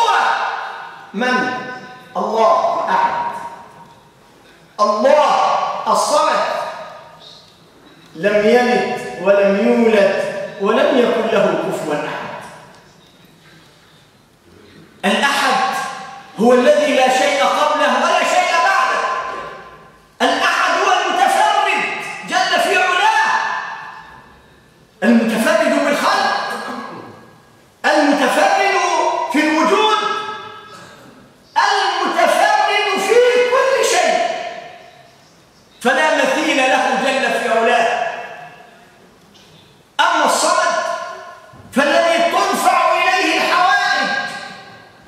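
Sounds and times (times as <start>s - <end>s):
man preaching: 0.0s - 3.8s, 4.7s - 7.5s, 8.1s - 12.8s, 15.0s - 24.2s, 25.0s - 39.0s, 39.9s - 45.0s.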